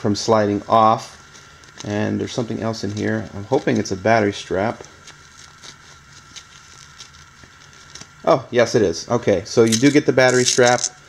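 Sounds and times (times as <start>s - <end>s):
packaging crackling rustle: 1.2s - 8.2s, 9.6s - 11.0s.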